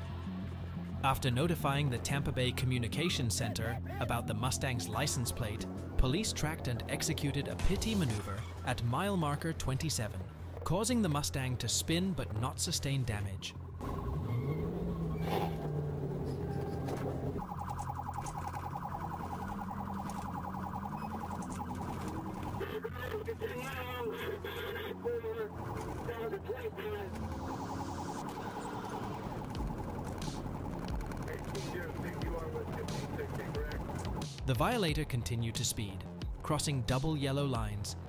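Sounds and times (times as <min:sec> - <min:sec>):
car engine: 0:13.5 - 0:34.4
police siren warbling: 0:13.8 - 0:34.2
voices: 0:18.6 - 0:29.4, 0:31.2 - 0:37.8.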